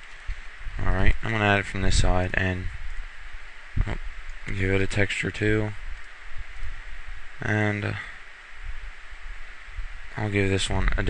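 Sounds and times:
microphone hiss: 0.0 - 11.0
faint low thumps: 0.2 - 11.0.

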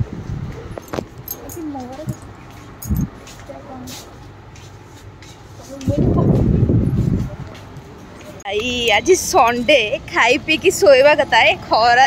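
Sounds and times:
supermarket background noise: 0.0 - 12.0.

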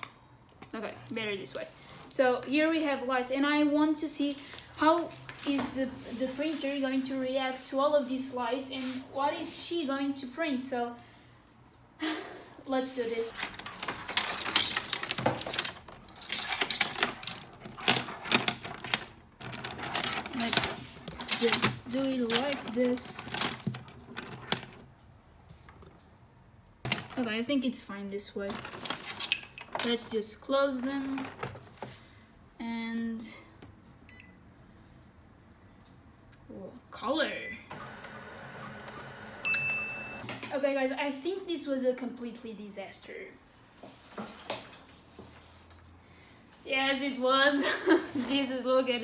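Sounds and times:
scanner mechanical whir: 37.6 - 40.3.

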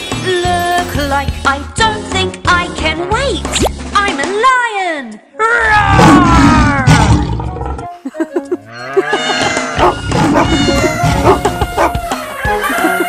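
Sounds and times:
children's music with held notes: 8.0 - 13.0.

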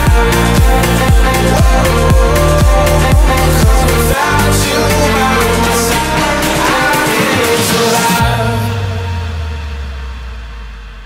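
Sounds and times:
sub-bass note sliding down: 0.0 - 6.9, 8.2 - 11.0
reverb wash: 0.0 - 11.0.

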